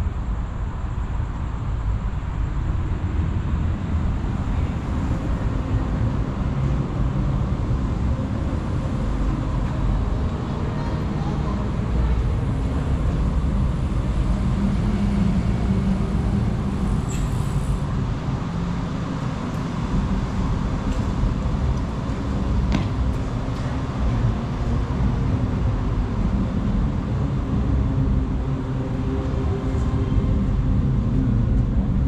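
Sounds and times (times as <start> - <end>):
road traffic rumble: 0.0 - 32.0
faint voices of passers-by: 2.8 - 32.0.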